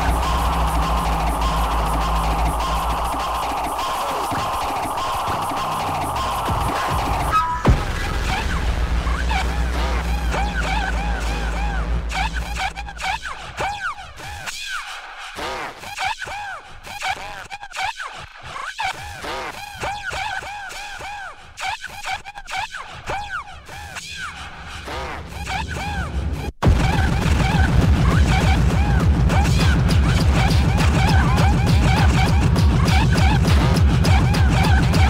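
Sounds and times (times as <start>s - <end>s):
synth sweeps: 0.0s - 13.3s
heavy kick drum and bass: 0.0s - 13.6s, 26.6s - 35.0s
noisy hits: 0.0s - 13.6s, 26.6s - 35.0s.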